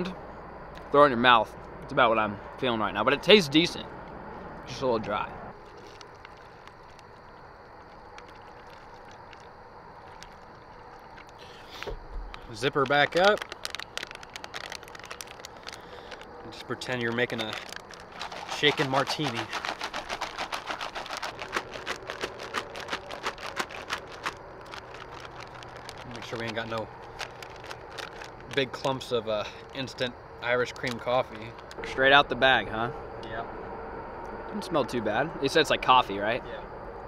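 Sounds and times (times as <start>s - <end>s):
water trickling into a pouch: 5.6s - 29.0s, 30.7s - 31.8s.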